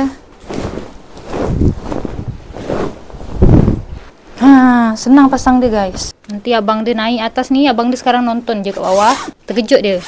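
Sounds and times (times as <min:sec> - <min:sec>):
fabric bed cover whooshing: 0:00.4 - 0:04.4
air buffeting microphone: 0:00.4 - 0:04.6.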